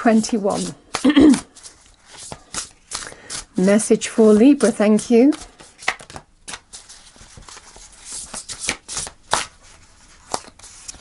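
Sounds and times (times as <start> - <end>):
cards shuffling: 0.0 - 11.0.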